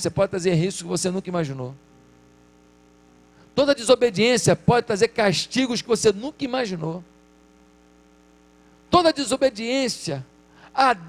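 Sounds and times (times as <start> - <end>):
man's voice: 0.0 - 1.8, 3.6 - 7.0, 8.9 - 11.0
electrical mains hum: 0.0 - 11.0.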